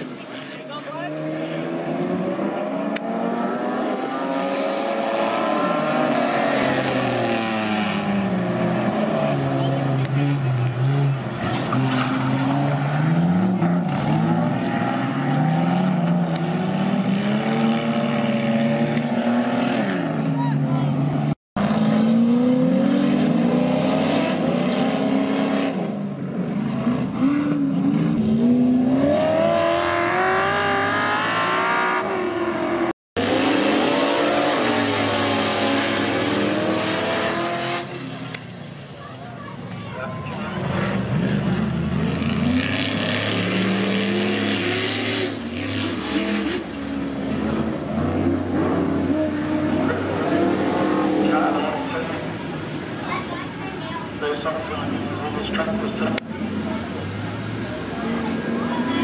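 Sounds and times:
race car engines revving: 0.0 - 59.0.

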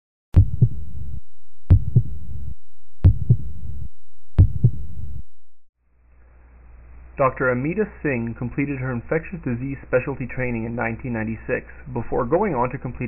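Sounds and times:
heartbeat: 0.4 - 5.4.

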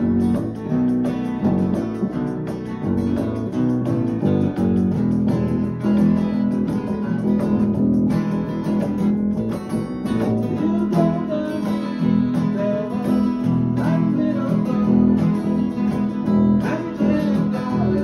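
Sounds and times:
acoustic guitars strumming blues: 0.0 - 18.0
guitar melody with bending notes: 0.0 - 18.0.

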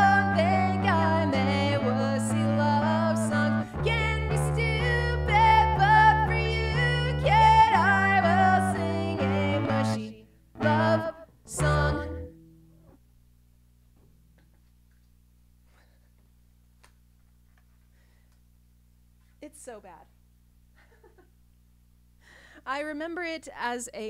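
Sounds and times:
woman singing: 0.0 - 12.3
electric bass: 0.0 - 15.1.

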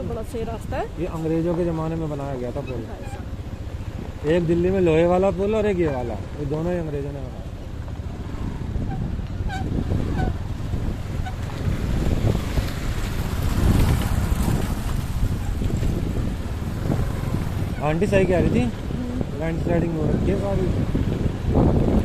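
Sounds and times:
motorcycle engine running: 0.0 - 22.0
wind buffeting microphone: 0.0 - 22.0.

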